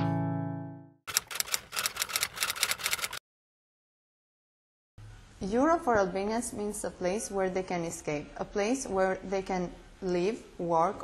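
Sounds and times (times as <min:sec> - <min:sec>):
typewriter keys clacking: 0:01.1 - 0:03.2.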